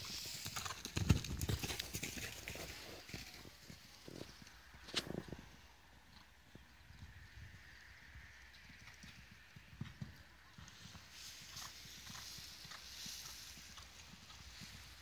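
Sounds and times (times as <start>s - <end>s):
horse hoofbeats on sand: 0.0s - 4.4s, 9.1s - 15.0s.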